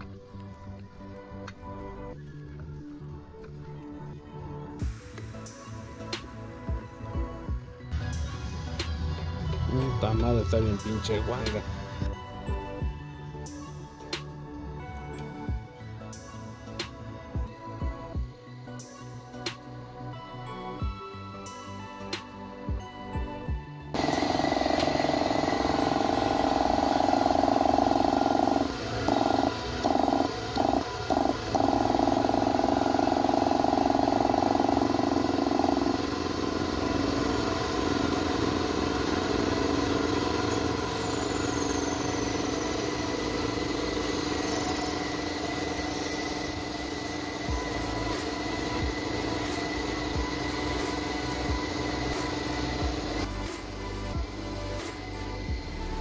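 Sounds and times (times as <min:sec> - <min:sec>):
background music: 0:00.0 - 0:56.0
air compressor humming: 0:24.0 - 0:56.0.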